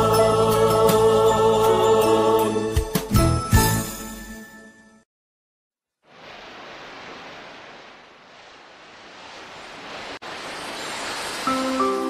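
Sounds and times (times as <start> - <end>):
rushing surf-like noise: 6.1 - 12.0.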